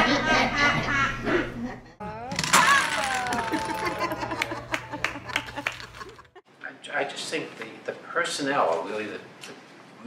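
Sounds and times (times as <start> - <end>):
woman exclaiming: 2.0 - 4.2
wooden blocks clattering onto table: 2.3 - 4.1
woman laughing: 3.0 - 6.4.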